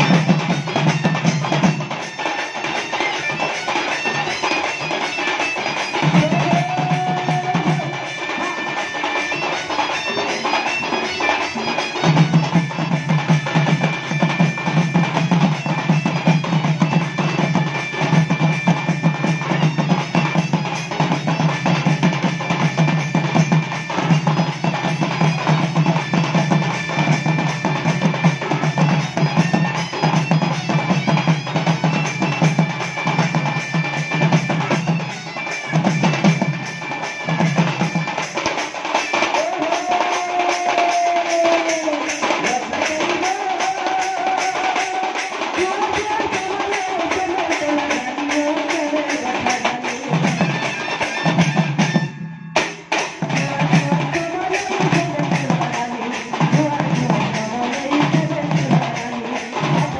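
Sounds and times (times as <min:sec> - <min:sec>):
dhol drums beating: 0:00.0 - 0:59.9.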